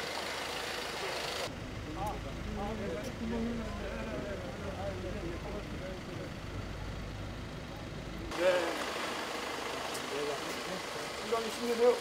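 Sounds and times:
van engine idling: 0.0s - 12.0s
people talking: 1.9s - 6.4s, 8.3s - 8.8s, 10.0s - 12.0s.

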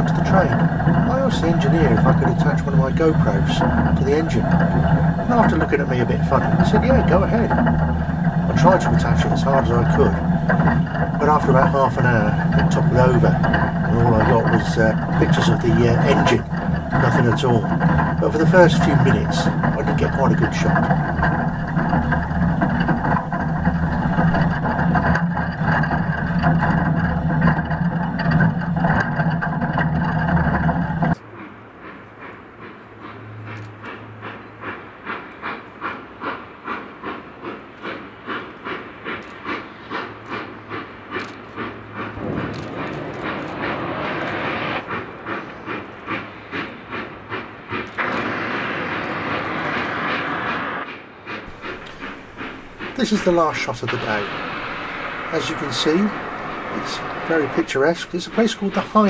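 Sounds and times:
steam locomotive exhaust chuffs: 0.0s - 59.0s
train running rumble: 0.0s - 59.0s
loud hiss of steam: 41.6s - 59.0s.

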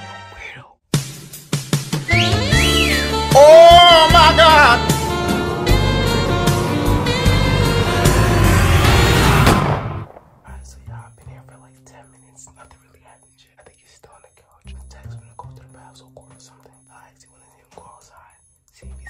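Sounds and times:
person whispering: 0.3s - 0.8s, 10.4s - 19.0s
loud music: 2.0s - 10.1s
steady low hum: 4.2s - 10.0s.

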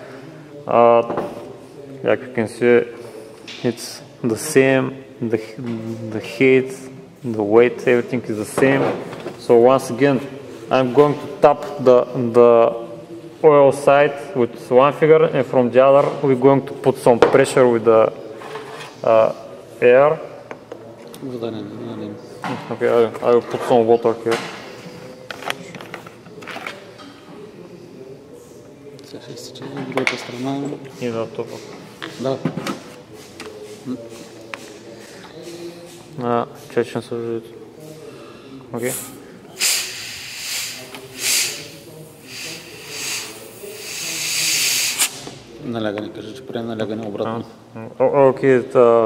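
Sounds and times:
compressed air hissing: 38.8s - 45.4s.

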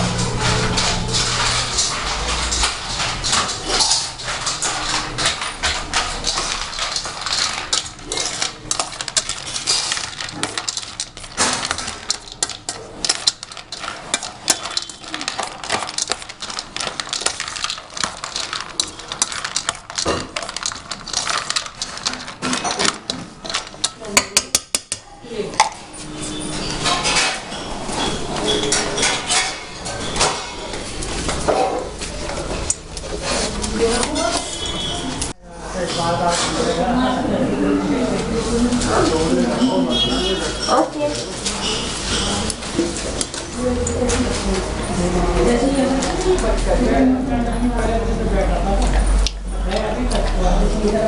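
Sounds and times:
metal spoon stirring in steel bowl: 0.0s - 51.0s.

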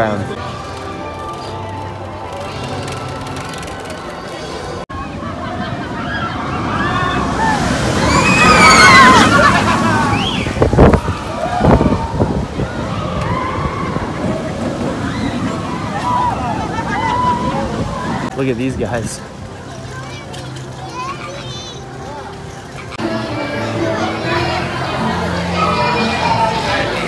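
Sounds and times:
roller coaster rushing past: 2.4s - 19.9s
riders screaming: 6.0s - 18.3s.

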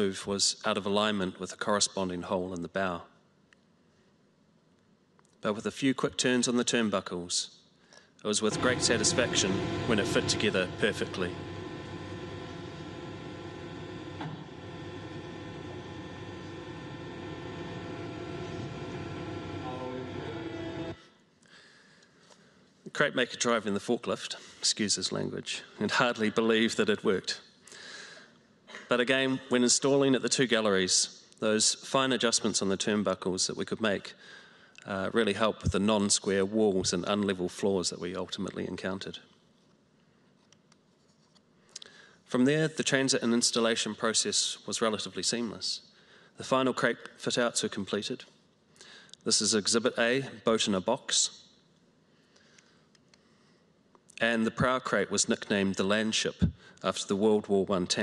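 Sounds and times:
forklift engine humming: 8.5s - 21.0s.

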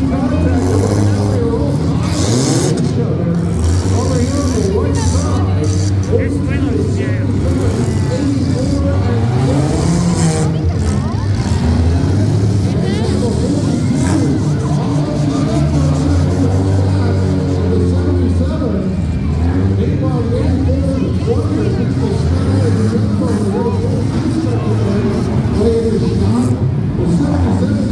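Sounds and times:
car engines revving hard: 0.0s - 27.9s
crowd noise: 0.0s - 27.9s.

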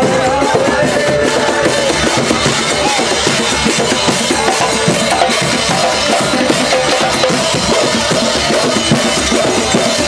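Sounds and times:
hand drums playing driving rhythm: 0.0s - 10.0s.

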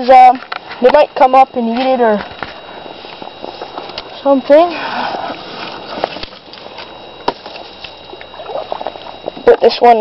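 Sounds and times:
shallow water sloshing: 4.8s - 9.6s.

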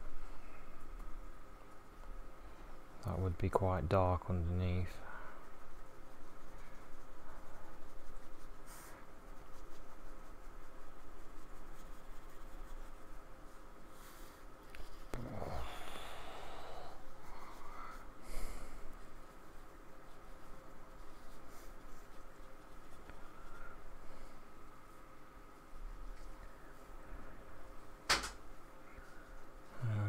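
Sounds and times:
paintbrush scratching on paper: 4.2s - 15.6s, 16.9s - 24.9s.

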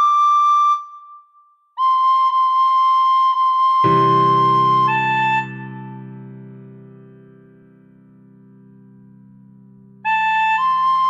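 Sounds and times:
recorder playing a melody: 1.8s - 6.5s, 10.1s - 11.0s.

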